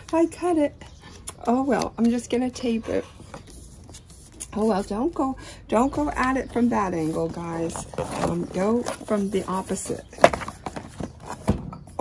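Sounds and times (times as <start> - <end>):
cardboard box on glass table: 0.0 - 12.0.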